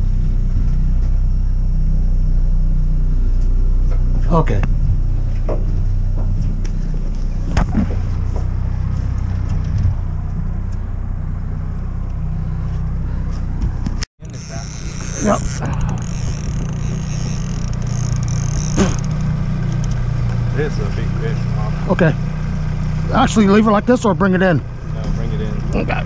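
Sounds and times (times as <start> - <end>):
motor whine: 0.0 - 26.0
outboard motor rumbling: 0.0 - 26.0.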